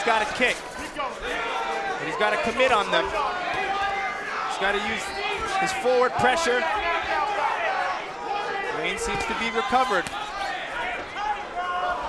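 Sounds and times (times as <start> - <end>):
arena crowd shouting: 0.0 - 12.0.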